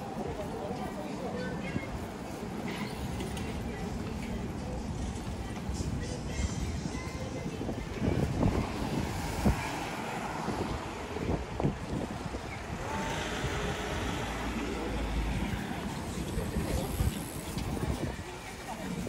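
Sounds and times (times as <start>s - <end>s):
busy city street noise: 0.0s - 19.0s
wind buffeting microphone: 5.8s - 19.0s.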